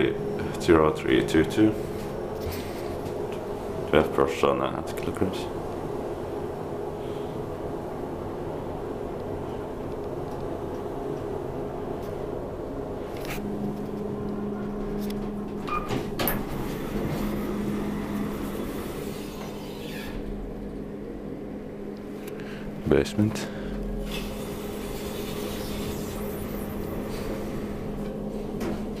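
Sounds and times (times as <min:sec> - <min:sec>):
elevator running hum: 0:00.0 - 0:29.0
elevator doors sliding open: 0:08.9 - 0:20.6, 0:23.8 - 0:29.0.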